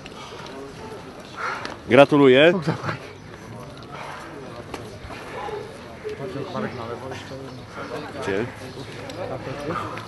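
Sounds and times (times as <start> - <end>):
faint murmur of voices: 0.0 - 10.0.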